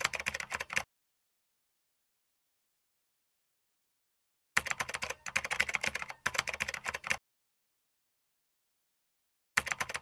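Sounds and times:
keyboard typing clicks: 0.0s - 0.9s, 4.6s - 7.2s, 9.6s - 10.0s.

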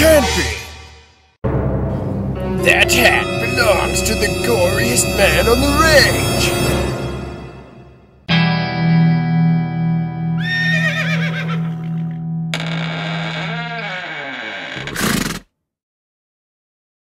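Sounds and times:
distorted electric guitar chord: 8.3s - 10.4s, 12.0s - 12.7s
horse whinnying: 10.4s - 12.2s, 14.7s - 15.4s.

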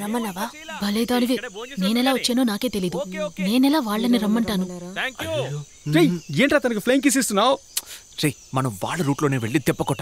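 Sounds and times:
people talking: 0.0s - 7.6s, 8.2s - 10.0s
insects chirring: 0.0s - 10.0s.

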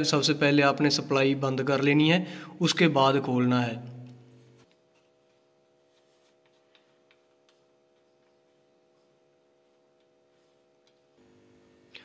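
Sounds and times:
faint steady hum: 3.8s - 12.0s.

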